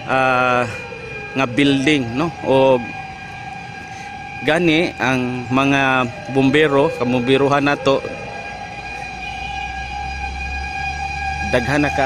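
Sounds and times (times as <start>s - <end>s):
distant fire truck siren: 0.0s - 12.0s.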